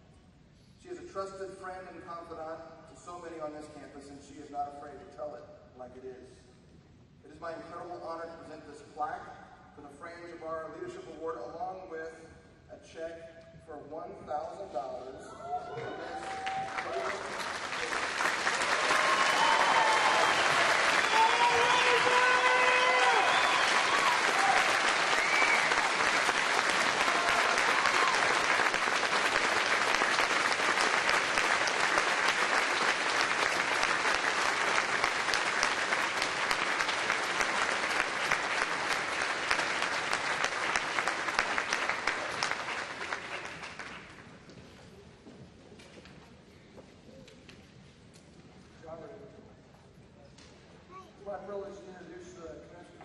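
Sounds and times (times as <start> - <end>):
cheers and whoops: 15.3 - 17.3, 18.6 - 26.1, 26.8 - 28.6
audience applauding: 15.7 - 44.4.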